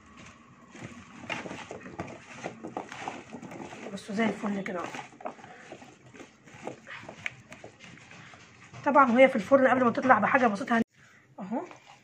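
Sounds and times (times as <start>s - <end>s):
hands tossing wet vegetables: 0.0s - 9.9s
woman speaking: 3.8s - 5.3s, 8.7s - 11.9s.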